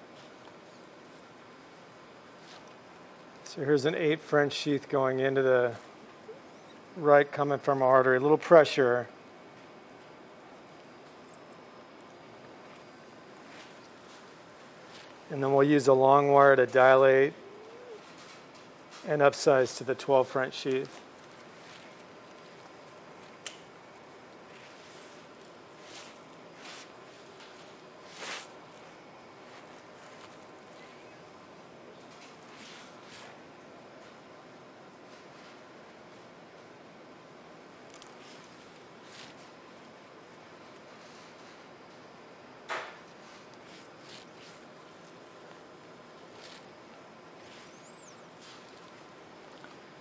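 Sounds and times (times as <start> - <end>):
steady room hiss: 0.0 - 50.0
rustling of surgical drapes: 12.6 - 15.3, 24.3 - 31.2, 43.1 - 49.9
faint high chirp: 47.5 - 48.7.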